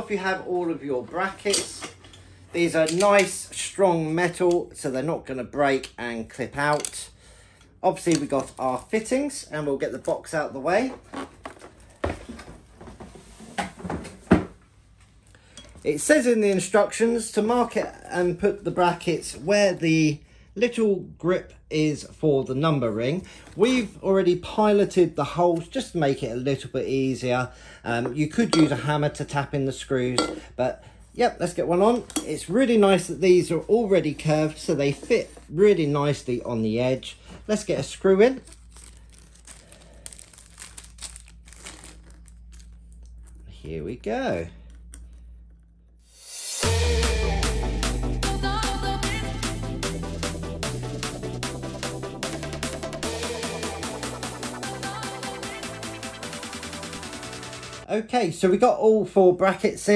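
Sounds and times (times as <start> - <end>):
plastic bag crinkling: 38.2 - 43.5.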